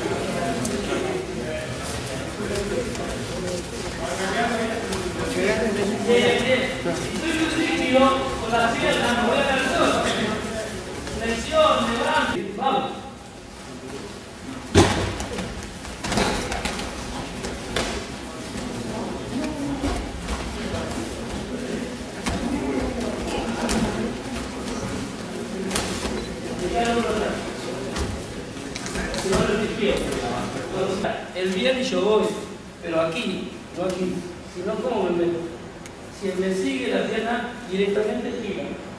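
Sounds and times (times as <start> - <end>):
murmur of voices: 0.0 - 38.9.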